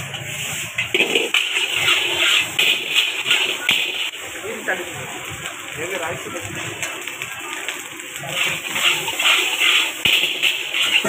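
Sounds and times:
ladle scraping a wok: 0.0s - 4.2s, 8.2s - 11.0s.

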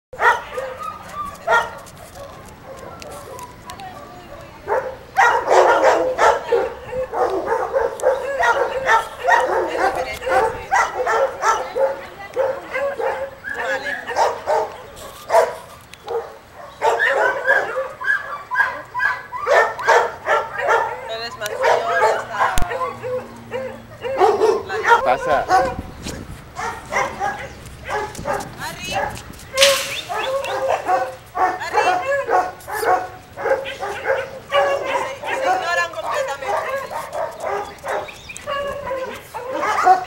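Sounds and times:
dogs barking: 0.1s - 40.0s.

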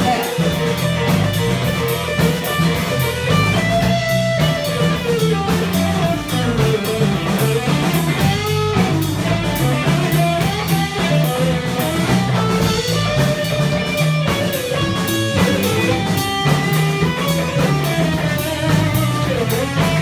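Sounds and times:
drum kit: 0.0s - 20.0s
electric guitar lead line: 0.0s - 20.0s
low repeating bass line: 0.0s - 20.0s.

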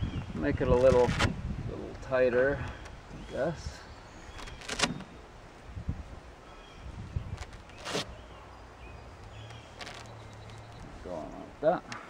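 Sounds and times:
velcro tearing: 7.4s - 8.1s, 9.7s - 10.2s.

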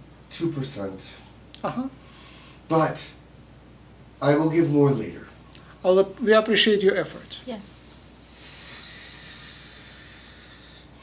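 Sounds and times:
person hissing breath: 2.0s - 2.6s, 8.0s - 11.0s.

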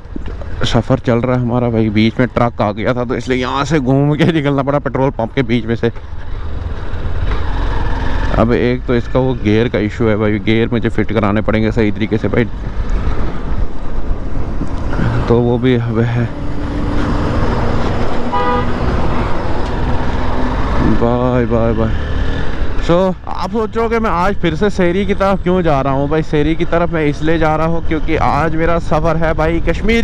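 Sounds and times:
motorcycle engine low rumble: 0.0s - 30.0s
short horn toot: 18.3s - 18.8s.

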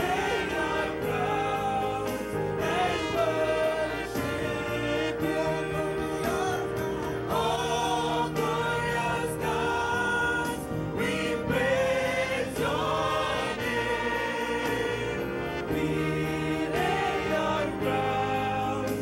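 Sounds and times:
choir singing: 0.0s - 19.0s
live band playing: 0.0s - 19.0s.

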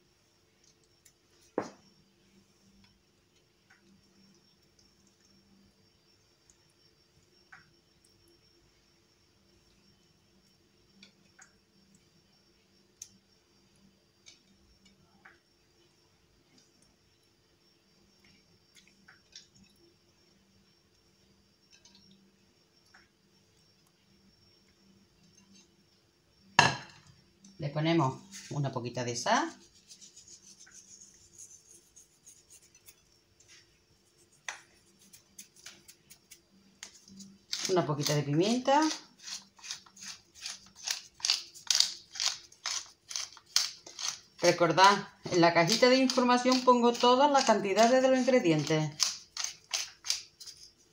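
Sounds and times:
pepper mill grinding: 34.9s - 50.8s.

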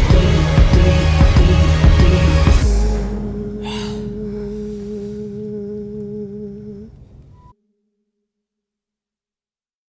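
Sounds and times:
music holding low note: 0.0s - 8.1s.

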